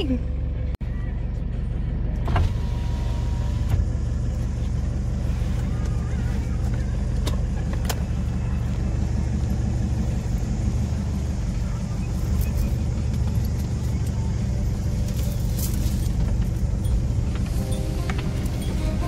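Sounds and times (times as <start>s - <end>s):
van engine running: 0.0s - 19.0s.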